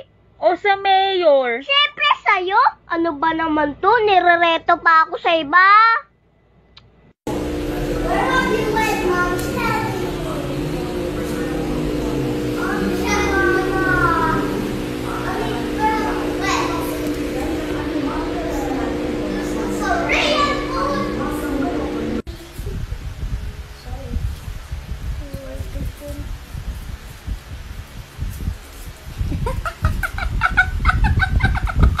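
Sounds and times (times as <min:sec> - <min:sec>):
indistinct voices: 0:07.3 - 0:22.9
steady low hum: 0:07.3 - 0:32.0
high-pitched clucks: 0:29.4 - 0:32.0.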